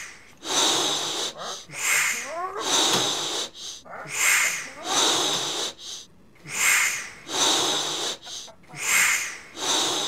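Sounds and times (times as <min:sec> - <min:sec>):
heavy breathing: 0:00.0 - 0:10.0.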